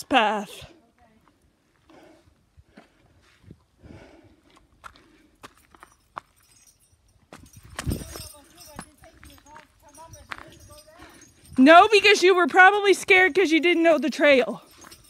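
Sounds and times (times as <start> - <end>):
footsteps crunching on gravel: 7.3 - 12.7.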